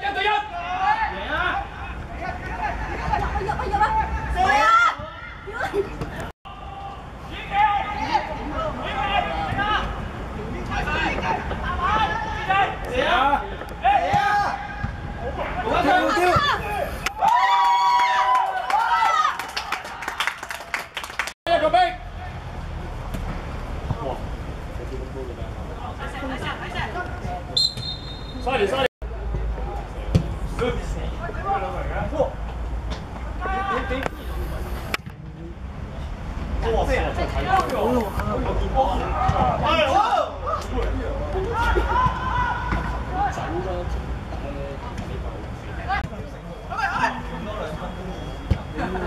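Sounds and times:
distant shouting voices: 38.8 - 43.6.

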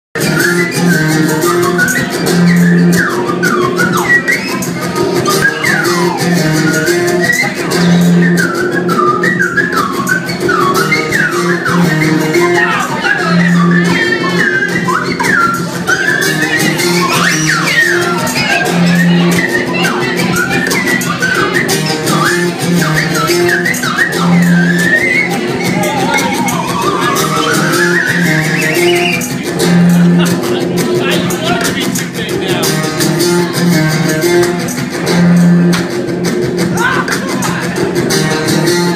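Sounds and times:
slide whistle glides: 0.2 - 29.3
fast rattling percussion beat: 0.2 - 38.9
repeating bass notes: 0.2 - 38.9
strummed guitar: 0.2 - 38.9.

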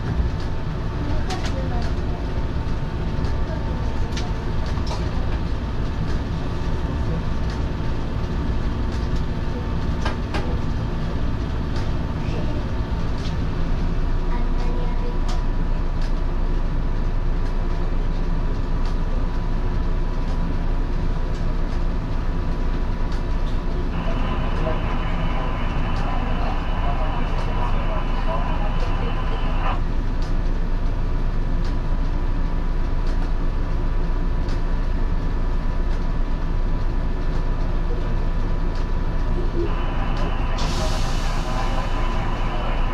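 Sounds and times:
railcar equipment hum: 0.0 - 42.9
faint whine: 23.9 - 29.9, 39.4 - 42.9.

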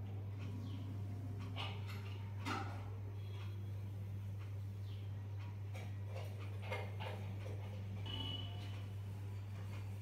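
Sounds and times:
low electrical hum: 0.0 - 10.0
faint ticks and clicks: 0.1 - 8.9.

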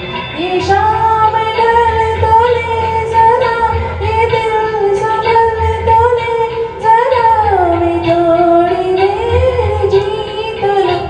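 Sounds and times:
woman singing into microphone: 0.0 - 11.0.

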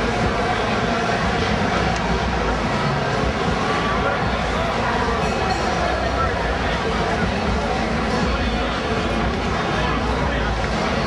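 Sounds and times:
crowd of people on street: 0.0 - 11.0.

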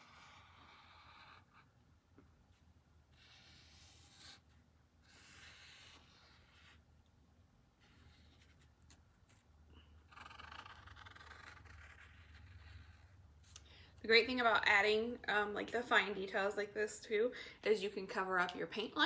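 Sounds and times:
paint pen scratching on wood: 0.0 - 1.7, 2.5 - 6.8, 7.8 - 9.5, 10.1 - 13.2.

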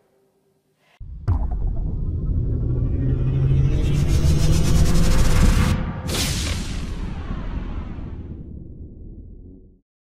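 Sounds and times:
deep rumble: 1.0 - 9.8
low drone: 1.0 - 9.8
impact hit: 1.1 - 7.3.

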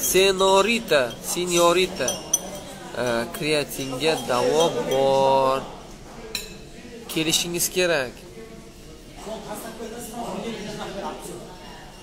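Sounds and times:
man speaking: 0.0 - 2.2, 3.0 - 5.7.

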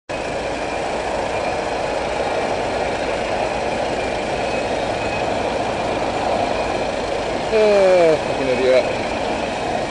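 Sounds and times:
road traffic drone: 0.1 - 9.9
vehicle engine running: 0.1 - 9.9.

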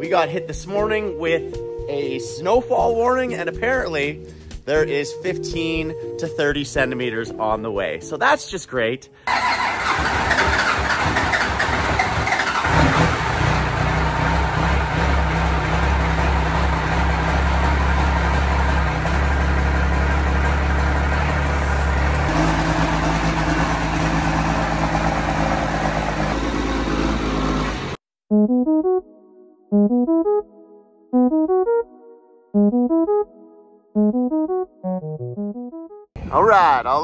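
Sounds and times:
truck engine cranking and running: 9.3 - 28.0.

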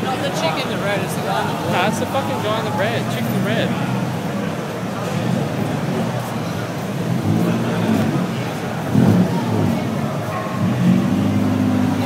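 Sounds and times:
car engine revving: 0.0 - 12.0.

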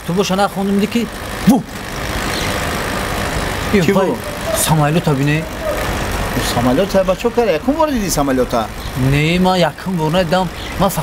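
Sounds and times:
aircraft passing overhead: 0.0 - 11.0.

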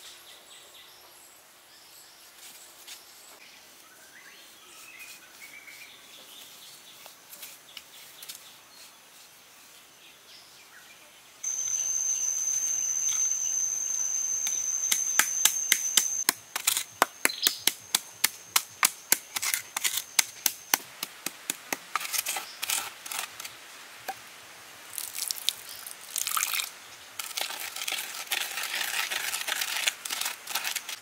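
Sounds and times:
high-pitched buzz: 11.5 - 16.3
pestle striking charcoal in bowl: 11.5 - 22.4.

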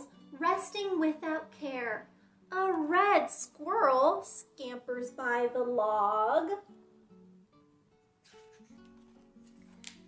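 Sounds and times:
acoustic guitar music: 0.0 - 10.0
paper page turning: 8.2 - 10.0.

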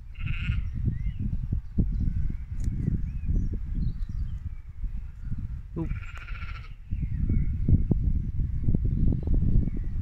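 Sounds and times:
sheep bleating: 0.2 - 0.6, 5.8 - 6.7.

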